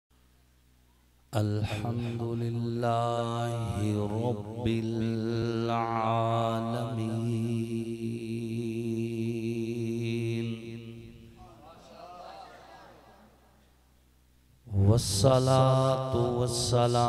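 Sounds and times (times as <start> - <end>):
man chanting melodically: 1.3 - 13.4, 14.6 - 17.0.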